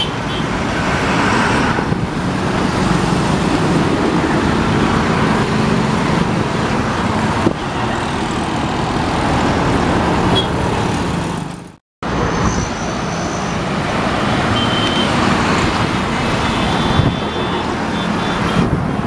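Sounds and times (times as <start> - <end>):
dense road traffic: 0.0 - 19.0.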